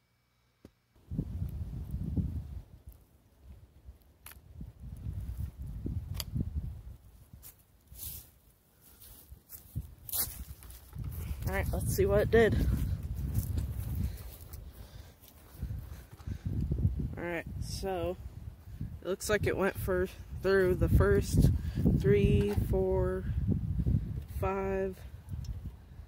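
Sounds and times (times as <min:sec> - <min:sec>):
wind buffeting microphone: 0:01.0 - 0:02.8, 0:04.4 - 0:07.5, 0:09.6 - 0:26.0
person speaking: 0:11.1 - 0:13.0, 0:17.1 - 0:18.2, 0:19.0 - 0:23.3, 0:24.3 - 0:25.0.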